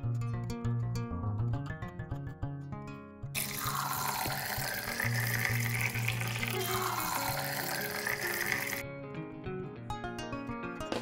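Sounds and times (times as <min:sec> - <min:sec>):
liquid pouring into a glass: 0:03.4 - 0:08.8.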